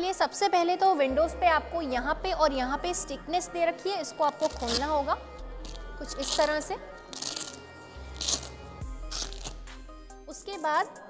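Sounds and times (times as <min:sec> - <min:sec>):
velcro ripping apart: 0:04.3 - 0:05.0, 0:05.6 - 0:09.8.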